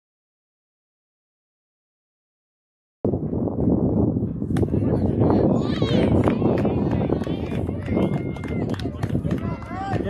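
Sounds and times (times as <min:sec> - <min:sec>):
indistinct chatter: 0:04.6 - 0:10.0.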